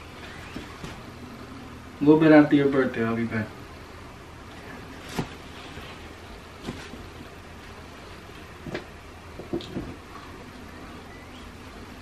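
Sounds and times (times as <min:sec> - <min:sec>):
steady low hum: 0:00.0 - 0:12.0
clothes rustling and tapping: 0:04.5 - 0:10.3.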